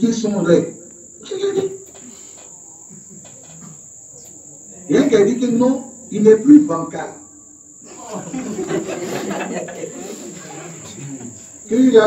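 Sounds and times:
steady high-pitched whine: 0.0s - 12.0s.

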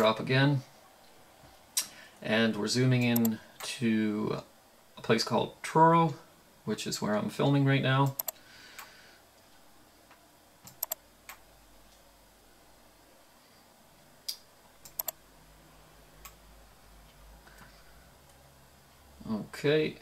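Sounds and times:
computer mouse clicks: 3.0s - 3.4s, 8.0s - 8.9s, 10.6s - 11.4s, 14.3s - 15.2s.

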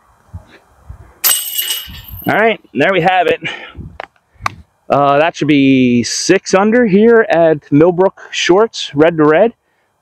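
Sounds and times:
disc striking basket chains: 1.2s - 2.4s.

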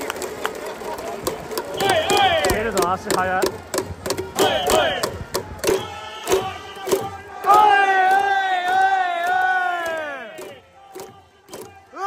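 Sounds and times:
drum beats: 1.2s - 12.0s
crowd chanting: 1.8s - 2.6s, 4.2s - 12.0s.

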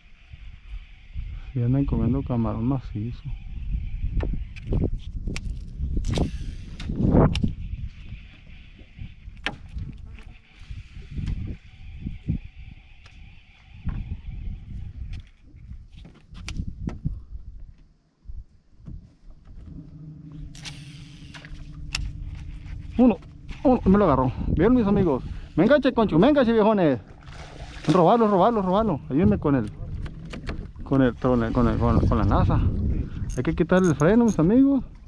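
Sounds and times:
wind rumbling on microphone: 0.0s - 35.0s
faint high-pitched whir: 18.9s - 26.4s.

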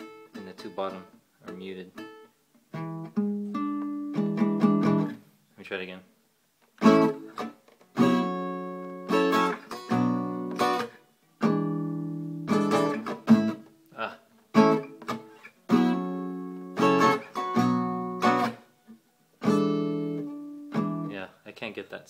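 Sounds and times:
acoustic guitar strumming chords: 0.0s - 5.2s, 6.8s - 21.2s.

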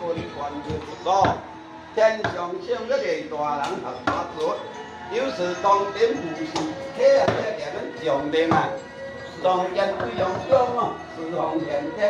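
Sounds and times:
several voices: 2.0s - 12.0s.

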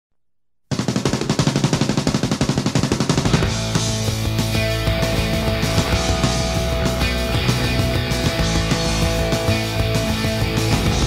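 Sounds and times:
punk band playing: 0.7s - 11.0s.

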